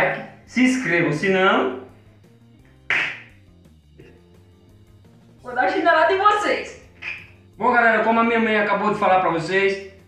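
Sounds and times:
faint background music: 0.0 - 10.0
sharp smack: 2.9 - 3.4.

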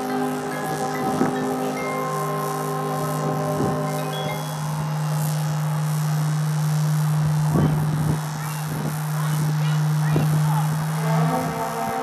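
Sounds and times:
marching band sustained chord: 0.0 - 12.0.

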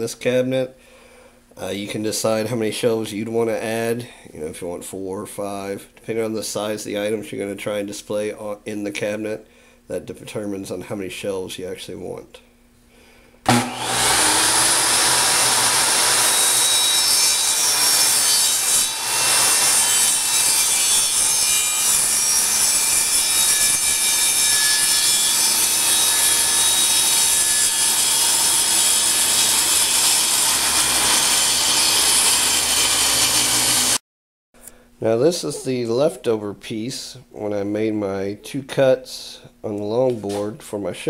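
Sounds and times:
circular saw cutting wood: 13.5 - 34.0.

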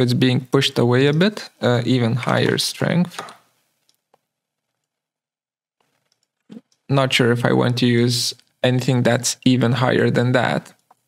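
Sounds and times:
person speaking: 0.0 - 3.5, 6.5 - 10.8.

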